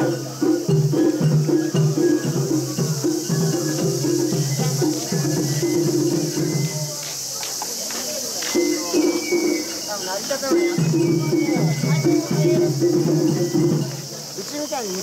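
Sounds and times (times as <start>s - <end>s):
people chanting in unison: 0.0s - 14.4s
steady high-pitched hiss: 0.0s - 15.0s.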